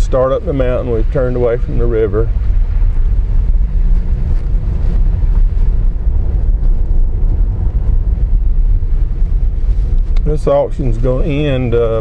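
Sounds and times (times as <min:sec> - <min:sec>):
car engine and tyre rumble: 0:00.0 - 0:12.0
wind buffeting microphone: 0:00.0 - 0:12.0.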